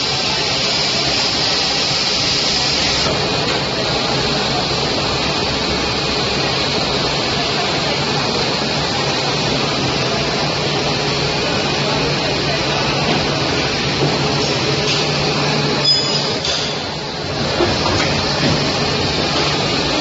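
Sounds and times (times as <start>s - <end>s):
machine mechanical hum: 0.0s - 20.0s.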